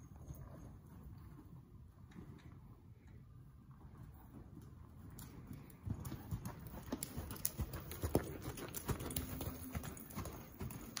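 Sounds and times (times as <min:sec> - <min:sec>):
horse hooves on sand: 0:03.8 - 0:11.0.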